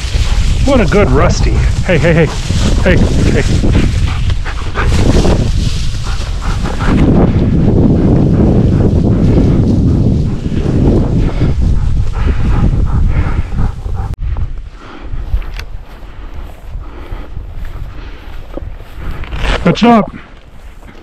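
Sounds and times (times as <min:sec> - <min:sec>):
brush rustling: 0:00.0 - 0:12.1
wind noise on microphone: 0:00.0 - 0:19.7.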